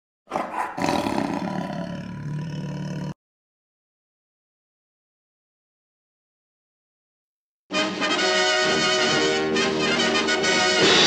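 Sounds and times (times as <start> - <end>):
lion roaring: 0.3 - 3.2.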